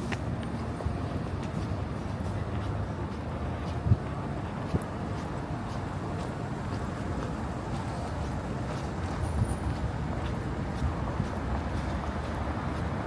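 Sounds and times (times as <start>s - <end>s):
footsteps on pavement: 0.0s - 13.0s
road traffic rumble: 0.0s - 13.0s.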